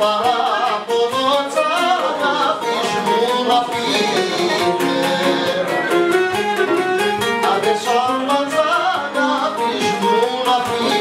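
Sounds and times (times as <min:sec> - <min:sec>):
man singing: 0:00.0 - 0:11.0
strummed mandolin and lute: 0:00.0 - 0:11.0.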